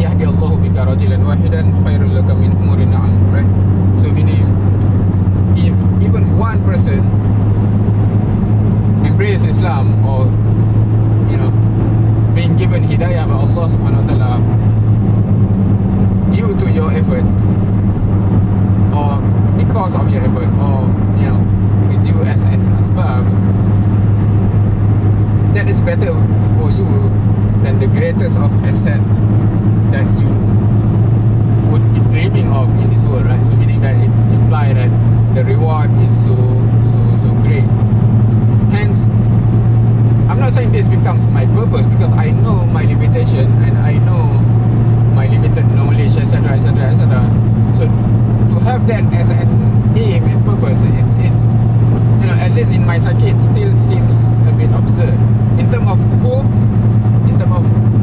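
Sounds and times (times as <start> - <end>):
car engine drone: 0.0 - 58.0
road noise: 0.0 - 58.0.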